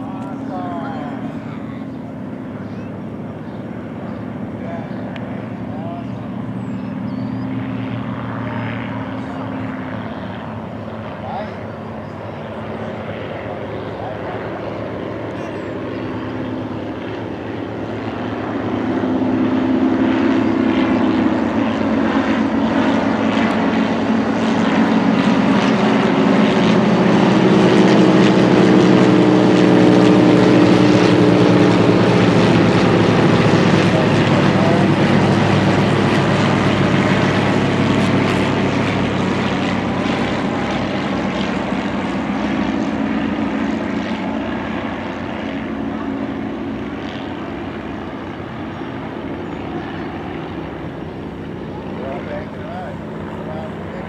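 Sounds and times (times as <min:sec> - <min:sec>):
propeller planes droning overhead: 0:00.0 - 0:54.0.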